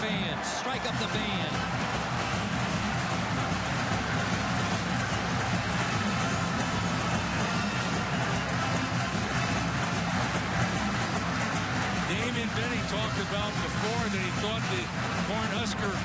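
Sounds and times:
crowd noise: 0.0 - 16.0.

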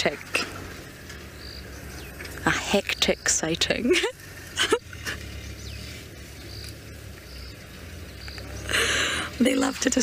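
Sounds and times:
low steady rumble: 0.0 - 10.0
high insect chirps: 0.6 - 3.6, 4.9 - 8.7.

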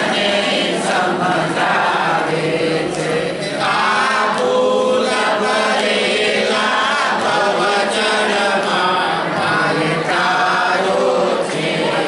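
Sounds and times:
congregation chanting: 0.0 - 12.0.

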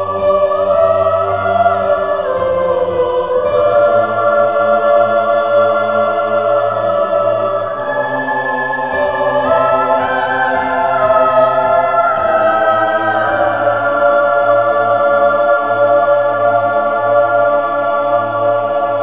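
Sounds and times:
choir singing held chords: 0.0 - 19.0.

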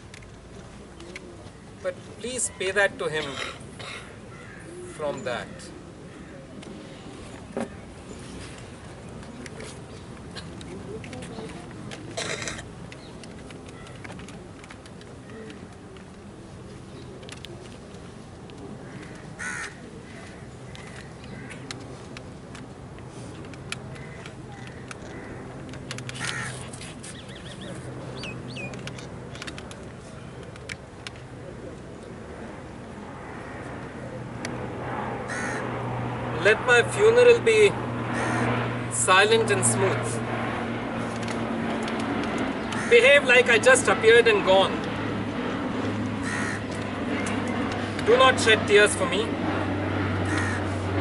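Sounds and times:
open-air background noise: 0.0 - 51.0
steady low hum: 0.0 - 51.0
crow cawing: 3.8 - 6.4, 18.8 - 21.6, 24.0 - 25.4, 26.2 - 26.6, 35.3 - 35.7, 38.1 - 38.5, 42.7 - 43.0, 46.2 - 47.4, 50.2 - 50.8.

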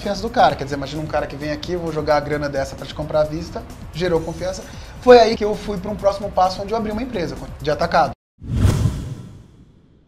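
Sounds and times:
deep whoosh: 8.4 - 10.0.

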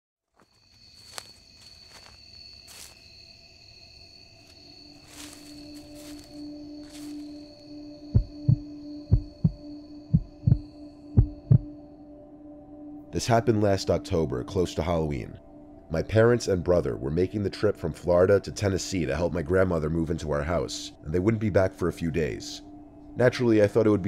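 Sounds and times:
dark ambient drone: 0.6 - 24.0
heartbeat double thumps: 8.1 - 11.7.

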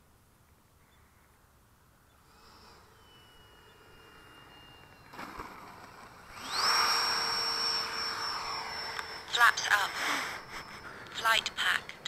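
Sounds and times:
electric ducted fan whine: 0.0 - 12.0.

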